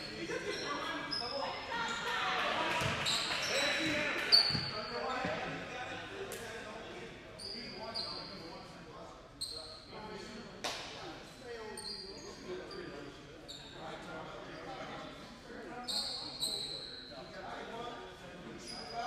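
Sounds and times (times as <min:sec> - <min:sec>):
voices echoing in gym: 0:00.0 - 0:19.0.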